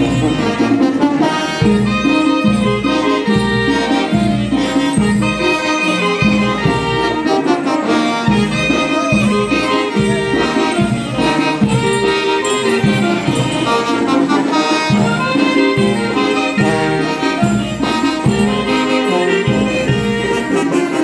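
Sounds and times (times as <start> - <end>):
band melody: 0.0 - 21.0.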